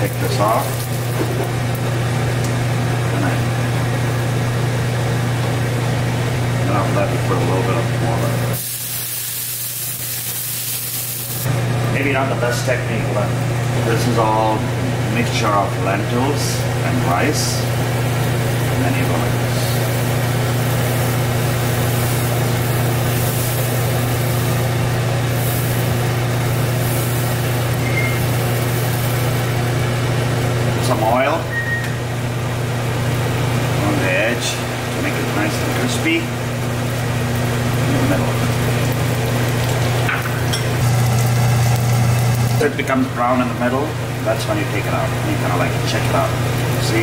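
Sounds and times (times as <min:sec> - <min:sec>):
exhaust fan humming: 0:00.0 - 0:47.0.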